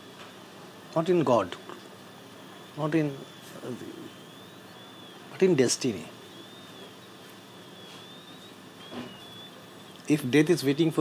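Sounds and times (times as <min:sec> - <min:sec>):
steady low hiss: 0:00.0 - 0:11.0
faint high wavering tones: 0:02.2 - 0:10.1.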